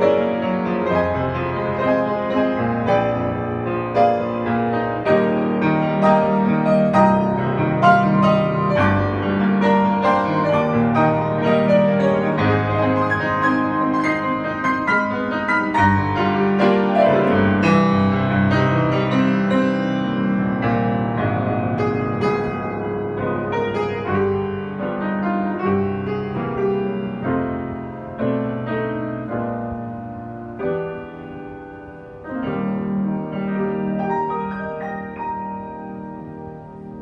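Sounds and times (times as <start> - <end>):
grand piano playing: 0.0 - 37.0.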